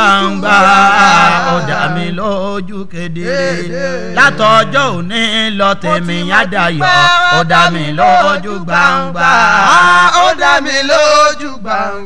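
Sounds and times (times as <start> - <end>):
man chanting: 0.0 - 9.9.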